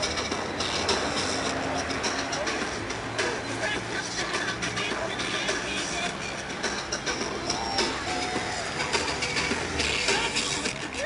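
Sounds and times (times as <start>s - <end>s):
buses and cars driving past: 0.0s - 11.0s
people's voices: 0.0s - 11.0s.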